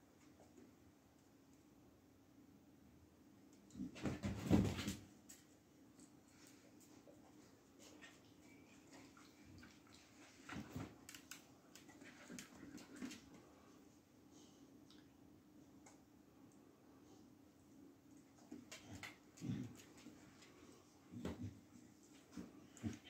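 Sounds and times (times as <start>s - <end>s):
dogs play-fighting: 18.3s - 23.0s.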